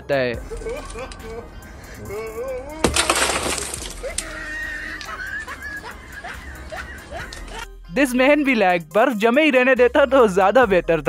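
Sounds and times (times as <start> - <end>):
glass crackling and falling apart: 0.5 - 1.3, 2.8 - 5.8
car window shattering: 2.8 - 5.9.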